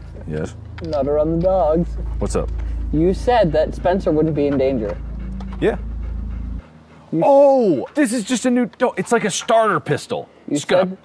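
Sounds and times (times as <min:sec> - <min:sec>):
steady low hum: 0:00.0 - 0:08.3
dog panting: 0:01.9 - 0:09.3, 0:10.5 - 0:11.0.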